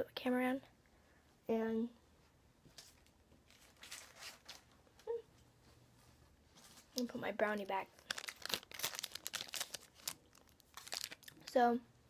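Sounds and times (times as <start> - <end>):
plastic packaging crinkling: 3.5 - 4.7, 7.7 - 11.6.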